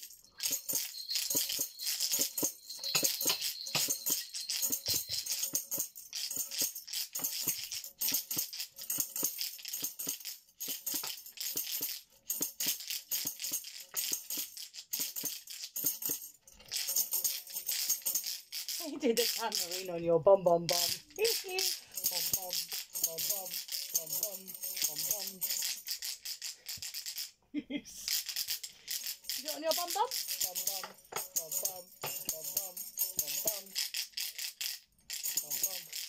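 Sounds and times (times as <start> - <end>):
tambourine jingles rattling: 0.0 - 36.0.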